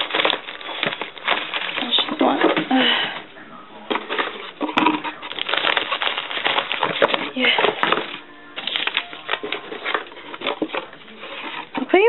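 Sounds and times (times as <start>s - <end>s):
foil wrappers crinkling: 0.0s - 12.0s.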